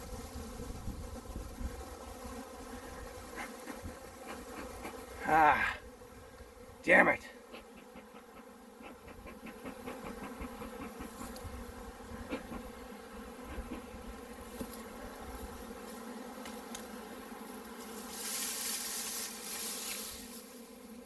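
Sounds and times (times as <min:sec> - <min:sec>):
bees buzzing: 0:00.0 - 0:21.0.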